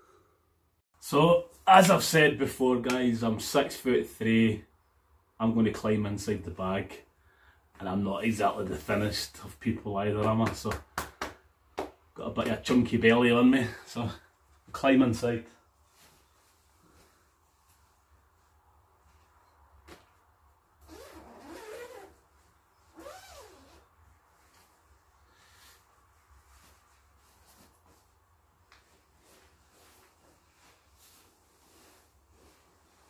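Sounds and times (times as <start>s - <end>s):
sleeping bag rustling: 20.0s - 33.0s.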